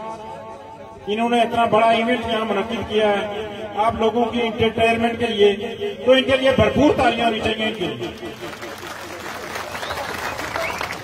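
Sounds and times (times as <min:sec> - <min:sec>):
audience applauding: 0:08.0 - 0:11.0.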